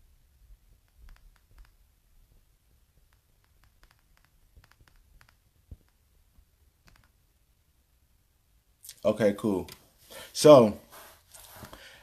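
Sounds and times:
faint clicks: 3.0s - 6.0s, 6.8s - 7.2s.

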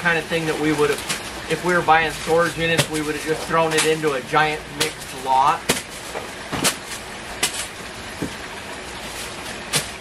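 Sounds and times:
steady background noise: 0.0s - 10.0s
cardboard boxes knocking and rustling: 2.2s - 4.2s, 4.8s - 10.0s.

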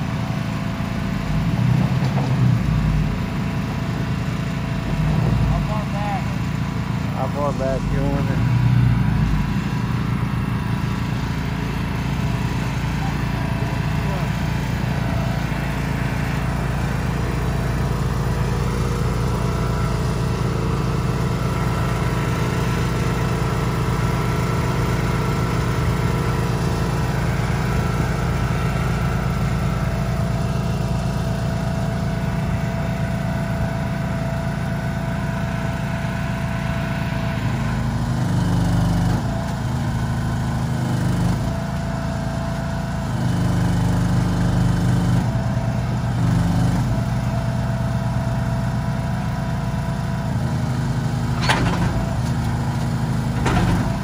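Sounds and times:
truck engine running: 0.0s - 54.0s.

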